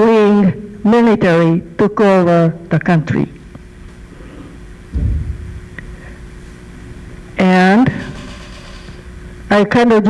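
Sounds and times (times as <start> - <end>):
low room tone hum: 0.0 - 10.0
microphone handling rumble: 5.0 - 6.9.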